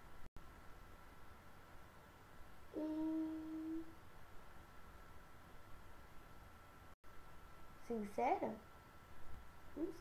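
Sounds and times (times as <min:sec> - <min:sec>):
girl humming hmm: 0:02.7 - 0:04.0.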